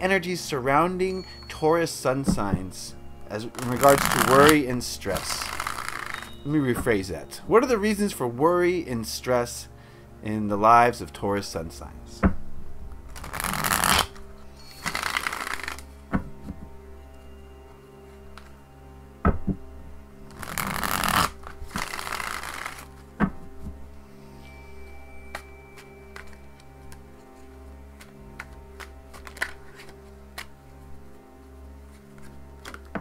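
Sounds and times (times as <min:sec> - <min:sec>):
soft instrumental music: 0:00.0 - 0:33.0
cards riffle-shuffled: 0:03.5 - 0:06.4, 0:13.1 - 0:15.9, 0:20.3 - 0:23.0, 0:25.3 - 0:30.6, 0:31.9 - 0:33.0
deck of cards tapping: 0:03.6 - 0:06.9, 0:14.9 - 0:16.6, 0:20.3 - 0:23.8, 0:25.3 - 0:27.0, 0:28.0 - 0:30.6.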